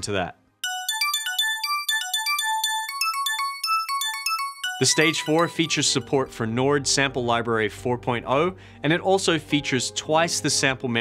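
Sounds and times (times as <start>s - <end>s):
synth arpeggio notes: 0.6s - 7.1s.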